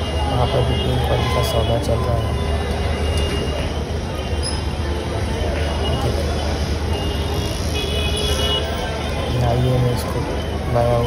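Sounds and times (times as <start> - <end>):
low rumble of vehicles: 0.0 - 11.0.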